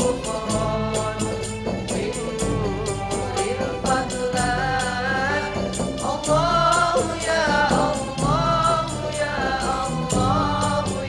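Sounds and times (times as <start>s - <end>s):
choir singing: 0.0s - 11.0s
frame drums beating: 0.0s - 11.0s.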